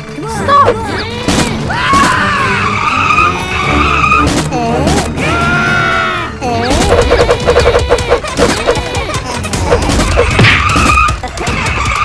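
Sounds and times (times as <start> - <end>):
car tyres squealing: 2.2 - 4.3.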